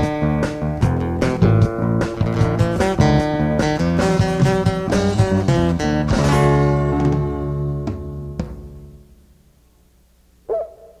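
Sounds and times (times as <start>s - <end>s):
acoustic guitar chord: 0.0s - 9.2s.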